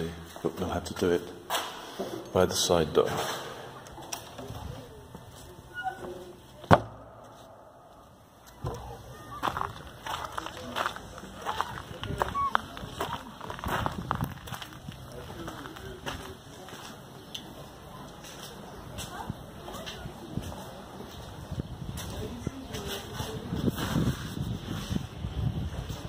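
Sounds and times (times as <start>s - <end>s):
distant voices: 1.4s - 23.9s.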